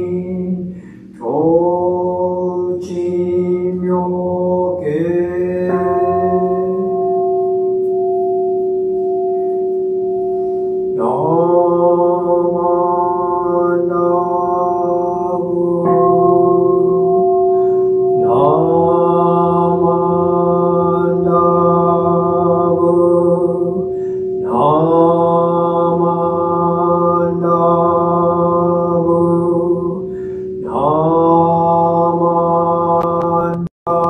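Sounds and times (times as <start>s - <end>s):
man chanting: 0.0s - 7.3s, 11.0s - 17.2s, 18.1s - 34.0s
temple bowl bell ringing: 0.0s - 34.0s.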